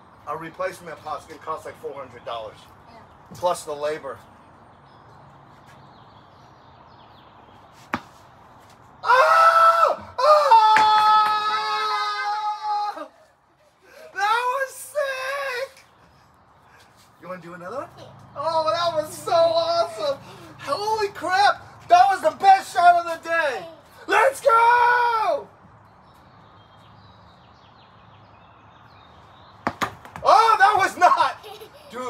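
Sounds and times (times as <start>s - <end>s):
excited voices: 9.0s - 15.8s, 17.8s - 25.5s, 30.2s - 32.0s
child yelling: 23.3s - 25.4s.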